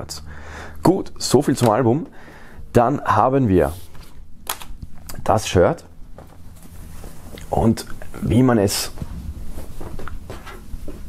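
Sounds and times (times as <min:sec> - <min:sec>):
low steady hum: 0:00.0 - 0:11.0
fabric rustling: 0:06.1 - 0:08.2, 0:08.8 - 0:11.0.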